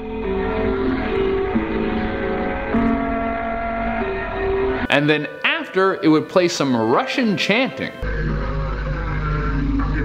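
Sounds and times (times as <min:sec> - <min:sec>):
pulsing low droning tone: 0:00.0 - 0:04.9.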